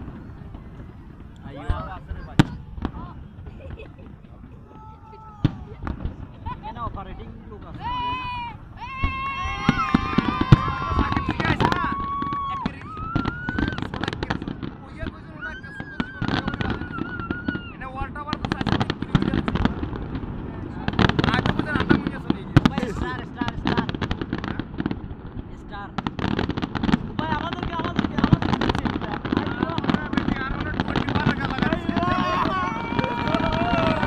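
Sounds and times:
fireworks crackling and banging: 0.0 - 34.0
onlookers' voices: 0.0 - 34.0.

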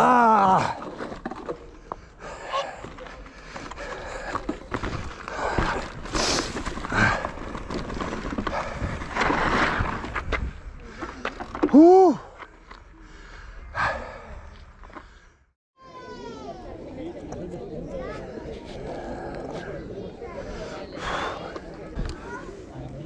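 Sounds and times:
bike rattling: 2.9 - 11.6
tyres rolling on loose stone: 3.5 - 11.7.

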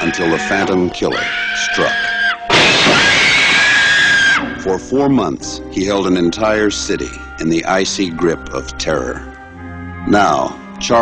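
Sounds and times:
music playing: 0.0 - 11.0
car window glass smashing: 2.5 - 3.8.

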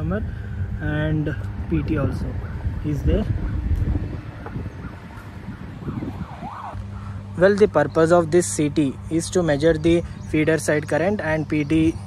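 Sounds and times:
wind buffeting microphone: 0.0 - 6.8
faint bird calls: 2.4 - 7.3.

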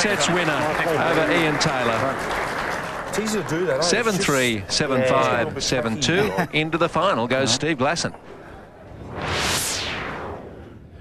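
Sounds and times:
transition whoosh: 8.8 - 11.0.

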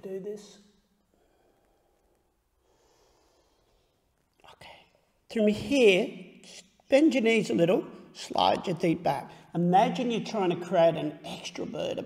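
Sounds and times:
faint breath-like hiss: 1.1 - 5.2.

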